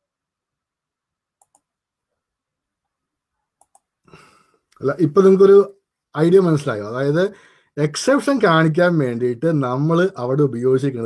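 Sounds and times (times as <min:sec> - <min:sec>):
faint double clicks: 0:01.4 - 0:01.7.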